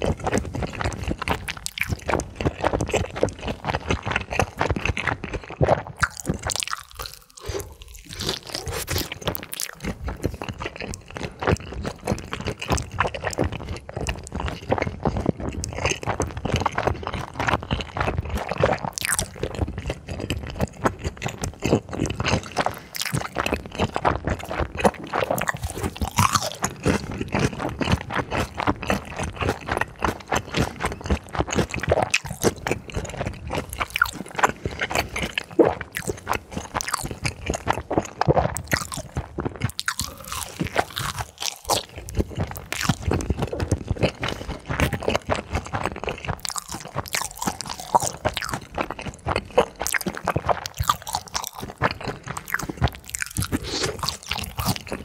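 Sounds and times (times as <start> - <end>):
biting and chewing food: 0.0 - 55.0.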